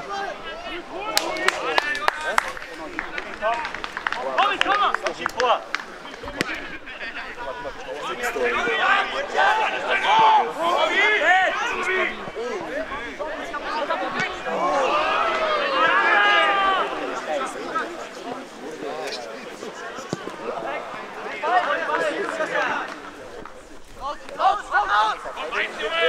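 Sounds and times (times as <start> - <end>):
voices shouting: 0.0 - 26.0.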